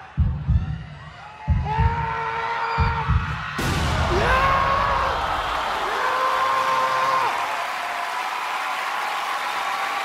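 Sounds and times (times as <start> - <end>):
heartbeat thumps: 0.0 - 5.0.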